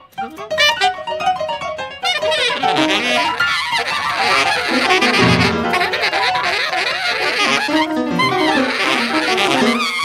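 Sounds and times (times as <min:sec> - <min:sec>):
piano: 0:00.0 - 0:10.0
reed instrument fast runs: 0:02.7 - 0:10.0.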